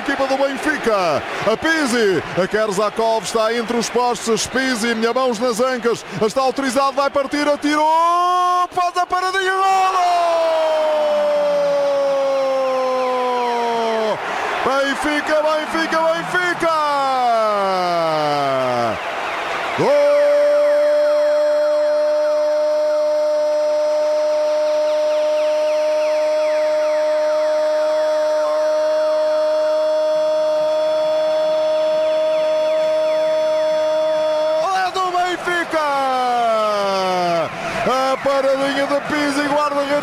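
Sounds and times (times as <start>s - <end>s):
commentator shouting: 0.0s - 19.0s, 19.8s - 24.7s, 27.7s - 40.0s
long high goal cry: 0.7s - 40.0s.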